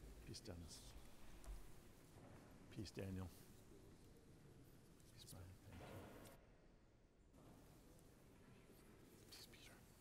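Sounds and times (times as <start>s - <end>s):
person whispering: 5.0s - 5.7s, 8.6s - 10.0s.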